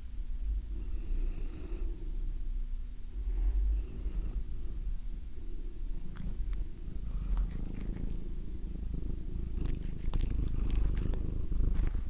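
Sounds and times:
cat purring: 3.7s - 12.0s
cat hissing softly: 6.0s - 11.5s.

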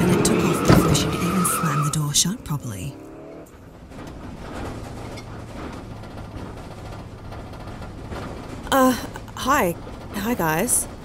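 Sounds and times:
van engine and road drone: 0.0s - 11.0s.

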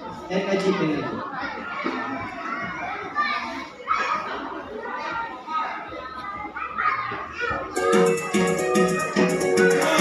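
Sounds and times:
young children chattering and calling: 0.0s - 10.0s.

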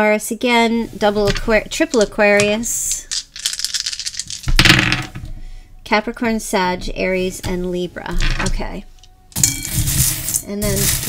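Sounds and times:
small hard objects clinking: 1.3s - 5.1s.

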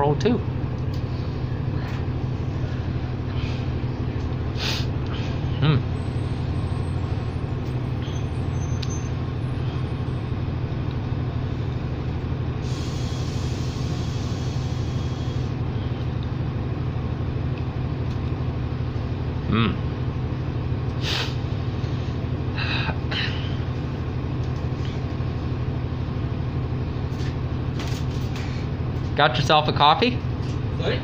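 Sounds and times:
diesel bus idling: 0.0s - 31.0s
compressed air hissing: 4.5s - 5.0s, 12.6s - 15.6s, 21.0s - 21.5s.

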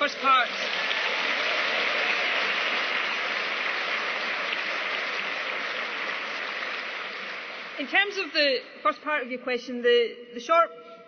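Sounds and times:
audience applauding: 0.0s - 8.3s.

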